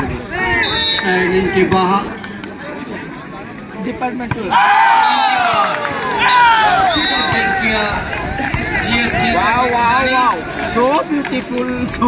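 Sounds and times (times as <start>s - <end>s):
crowd babble: 0.0s - 12.0s.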